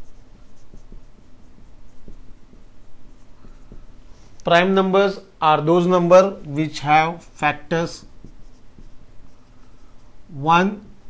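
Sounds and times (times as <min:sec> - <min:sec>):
marker writing on whiteboard: 0:00.0 - 0:04.2, 0:07.2 - 0:10.4.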